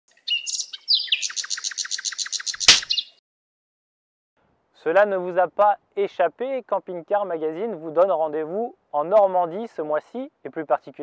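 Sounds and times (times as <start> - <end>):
songbird chirping: 0.1 - 3.2
sharp thump: 2.6 - 3.0.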